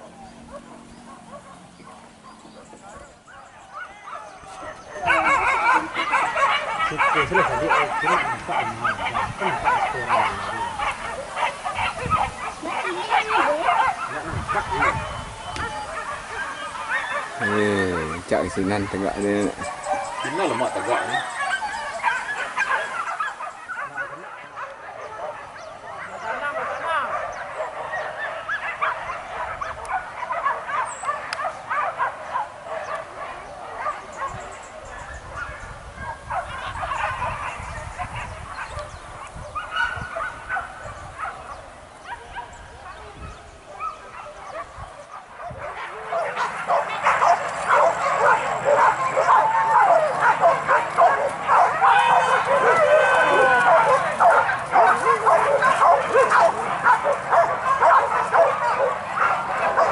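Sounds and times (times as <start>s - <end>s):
dogs barking and yelping: 0.0s - 59.9s.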